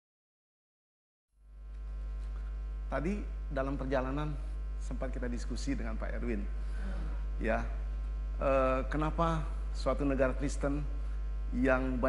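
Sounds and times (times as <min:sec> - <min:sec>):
electrical mains hum: 0:01.4 - 0:12.0.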